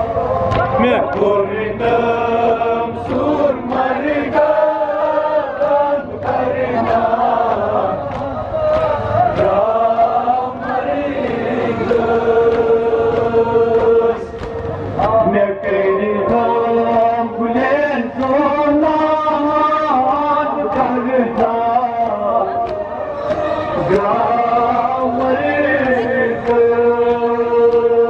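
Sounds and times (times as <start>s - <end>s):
man chanting through a loudspeaker: 0.0s - 28.0s
hands slapping chests: 20.7s - 24.2s.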